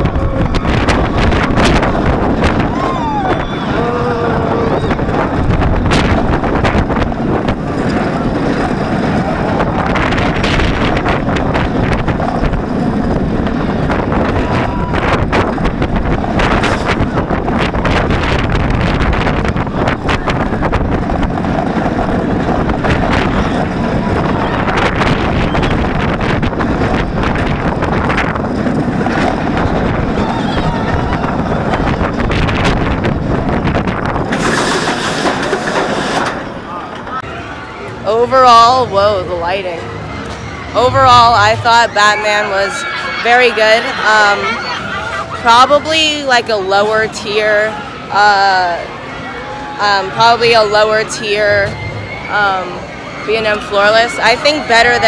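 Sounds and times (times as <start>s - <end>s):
roller coaster train rumbling on track: 0.0s - 55.0s
wind rush on microphone: 0.0s - 55.0s.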